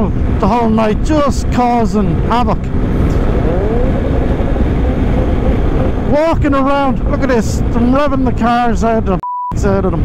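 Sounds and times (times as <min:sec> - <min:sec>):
wind and road noise: 0:00.0 - 0:10.0
motorcycle engine drone: 0:00.1 - 0:08.7.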